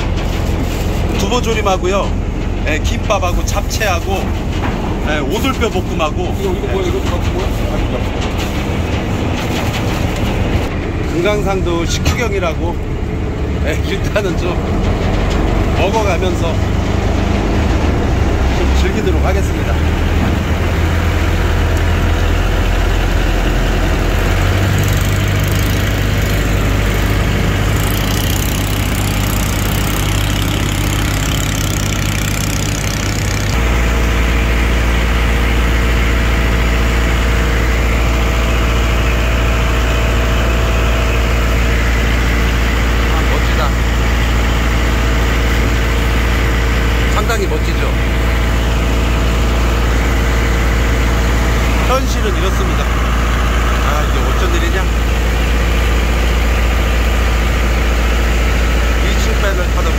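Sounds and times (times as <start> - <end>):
boat engine running: 0.0 - 59.9.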